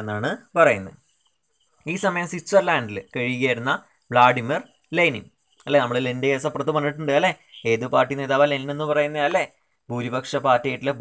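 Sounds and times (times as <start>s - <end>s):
man narrating: 0.0s - 1.1s, 1.8s - 11.0s.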